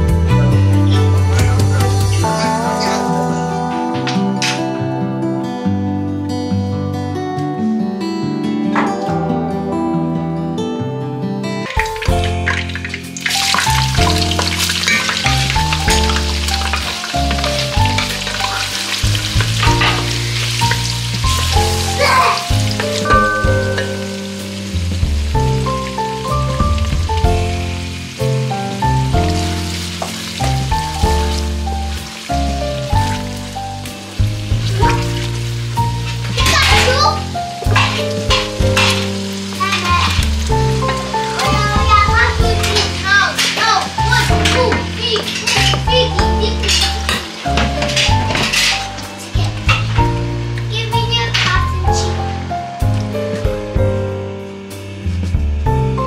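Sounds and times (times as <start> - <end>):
background music: 0.0 - 56.0
onions sizzling in hot oil: 11.7 - 53.4
wooden spoon stirring: 37.7 - 49.7.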